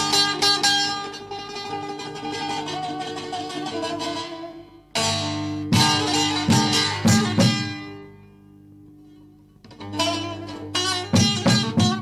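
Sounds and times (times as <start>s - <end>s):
plucked string instrument: 0.0s - 12.0s.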